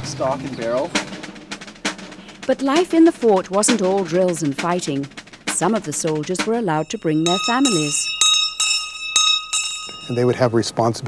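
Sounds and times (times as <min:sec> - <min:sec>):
bell ringing: 0:06.5 - 0:11.0.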